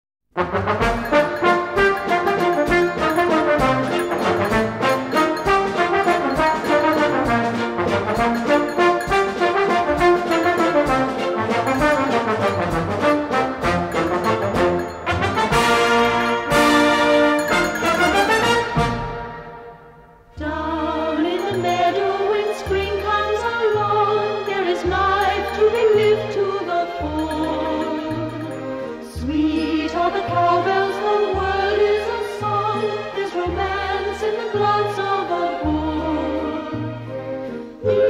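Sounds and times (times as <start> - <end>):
orchestra with brass playing: 0.3 - 20.0.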